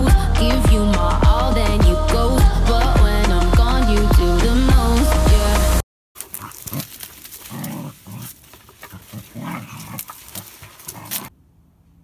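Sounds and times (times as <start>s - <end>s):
dog growling: 6.2s - 11.3s.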